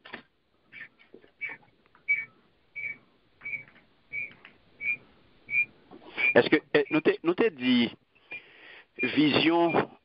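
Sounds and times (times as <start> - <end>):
high electronic beeps: 1.4 - 7.2, 9.0 - 9.9.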